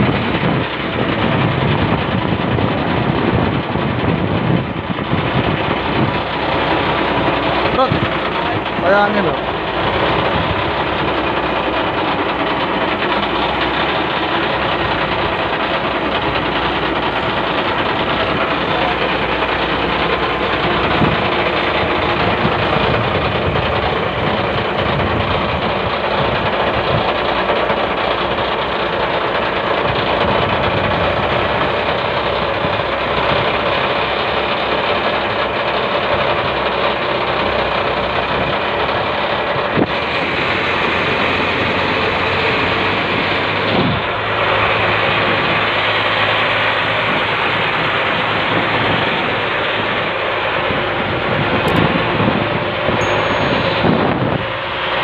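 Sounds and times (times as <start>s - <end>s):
boat engine droning: 0.0s - 55.0s.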